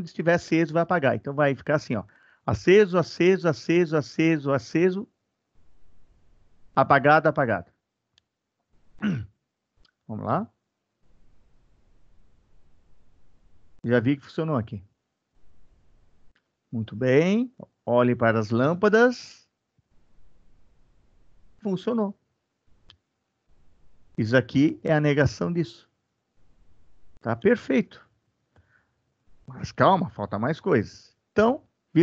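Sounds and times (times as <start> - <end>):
man clearing throat: 9.0 - 9.4
faint clicks: 16.3 - 16.6.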